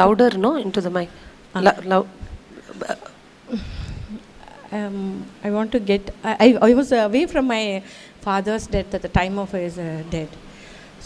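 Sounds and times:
woman catching breath: 0:03.5 - 0:04.2.

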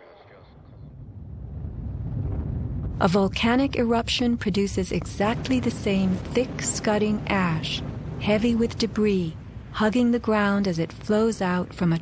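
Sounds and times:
wind buffeting microphone: 0:00.6 - 0:12.0.

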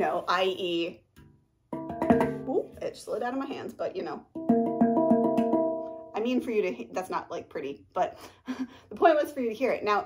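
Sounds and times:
handpan notes ringing: 0:01.2 - 0:02.6, 0:04.4 - 0:06.2.

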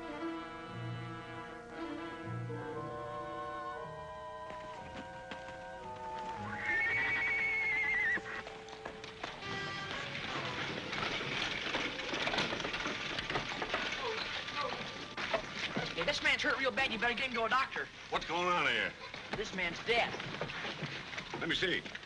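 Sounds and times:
orchestral music with held notes: 0:00.0 - 0:07.4
wagon rolling on dirt street: 0:02.0 - 0:22.0
horses' hooves clattering: 0:03.6 - 0:22.0
horse whinny: 0:06.4 - 0:08.7.

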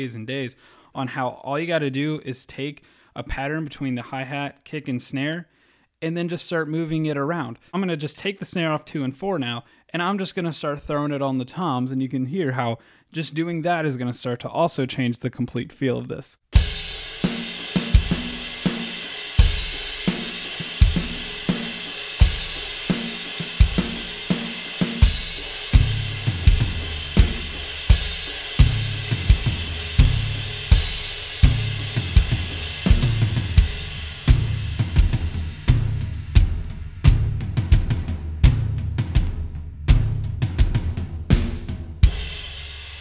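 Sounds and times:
drum kit groove: 0:16.5 - 0:43.0
ringing tom strokes: 0:16.6 - 0:38.6.

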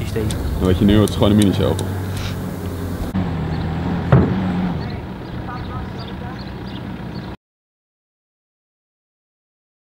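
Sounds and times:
diesel engine idling: 0:00.0 - 0:07.4.

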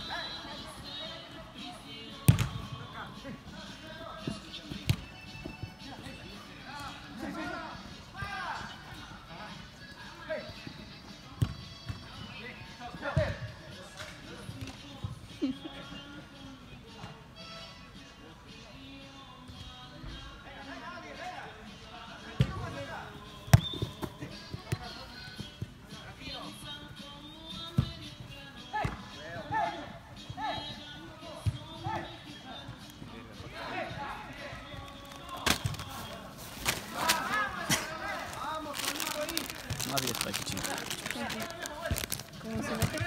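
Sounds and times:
background music: 0:00.0 - 0:43.0
soccer ball kicks and bounces: 0:02.3 - 0:02.7, 0:04.8 - 0:05.1, 0:23.5 - 0:24.9, 0:35.4 - 0:35.9.

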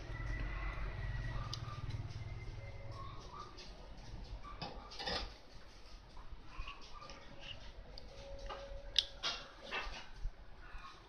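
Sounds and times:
clicks and rustles of handled wires: 0:03.6 - 0:10.4.

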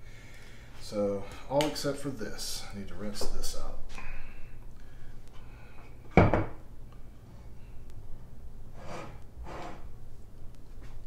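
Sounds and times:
glass jug knocking on countertop: 0:06.2 - 0:06.6.

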